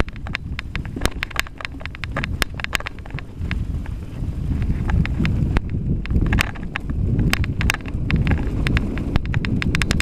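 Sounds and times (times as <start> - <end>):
bike rattling with sharp clicks: 0.0 - 10.0
low rumble of tyres and wind: 0.0 - 10.0.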